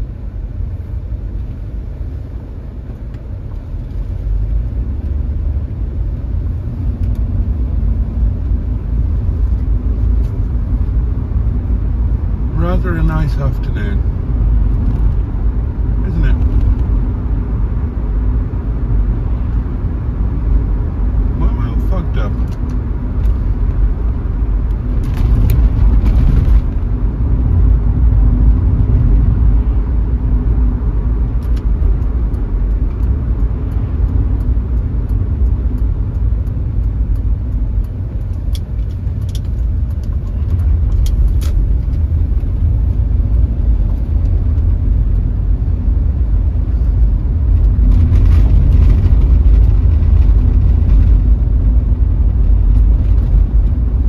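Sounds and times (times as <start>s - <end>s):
car engine and tyre rumble: 0.0s - 54.0s.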